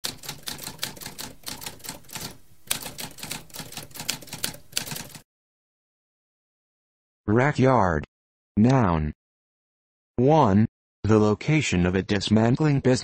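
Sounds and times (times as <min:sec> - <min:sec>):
typewriter keys clicking: 0:00.0 - 0:05.2.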